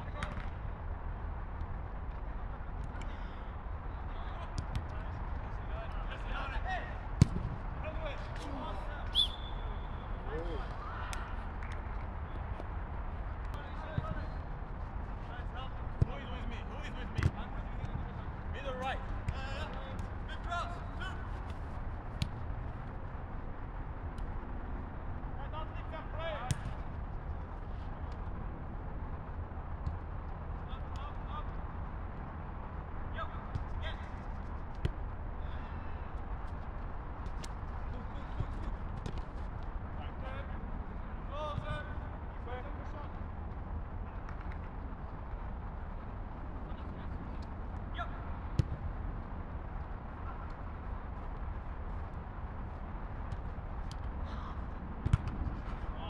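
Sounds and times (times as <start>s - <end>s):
football kicked thuds: 7.2s - 7.6s, 48.5s - 48.9s, 55.0s - 55.5s.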